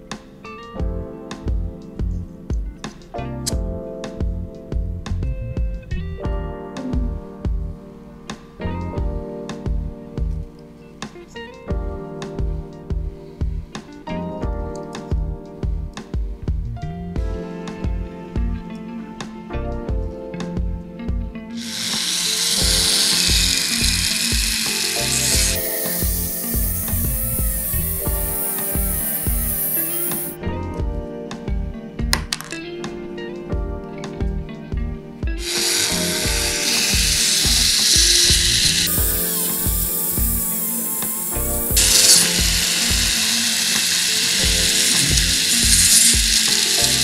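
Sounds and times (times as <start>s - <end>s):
background music with steady beat: 0.0s - 47.0s
rotary tool cutting plastic: 21.6s - 30.4s, 35.4s - 47.0s.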